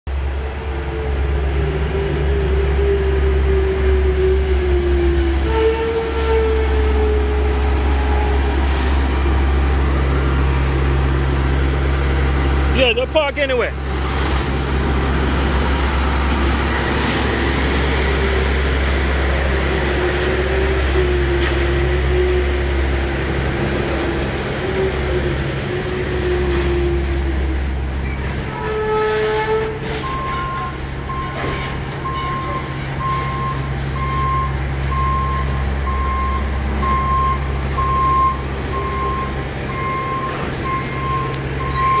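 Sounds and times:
diesel truck engine running: 6.0s - 28.6s, 30.0s - 42.0s
reversing alarm beeping: 30.0s - 42.0s.

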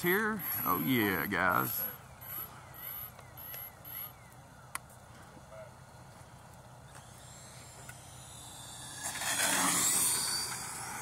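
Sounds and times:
electric ducted-fan jet: 0.0s - 11.0s.

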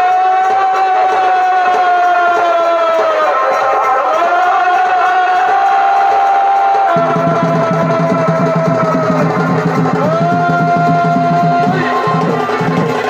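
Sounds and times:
drums fast beat: 0.0s - 13.0s
shehnai long notes: 0.0s - 13.0s.

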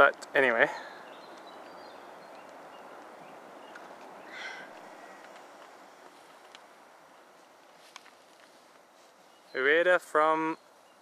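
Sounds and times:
soft steady hiss: 0.0s - 11.0s.

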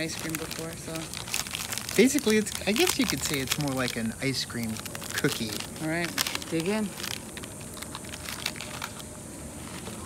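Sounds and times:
crisp crunching bite: 0.0s - 9.0s
foil wrapper crinkling: 0.0s - 10.0s
steady background hiss: 0.0s - 10.0s.

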